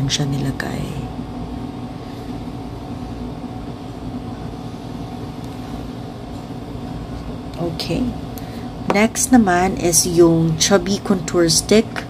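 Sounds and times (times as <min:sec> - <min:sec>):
machine hum and rumble: 0:00.0 - 0:12.0.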